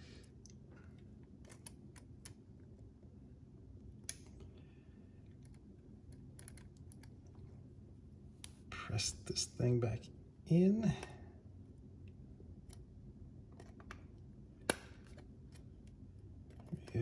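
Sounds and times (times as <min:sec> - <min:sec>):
low steady hum: 0:00.0 - 0:17.0
small plastic parts clicking: 0:05.3 - 0:07.2.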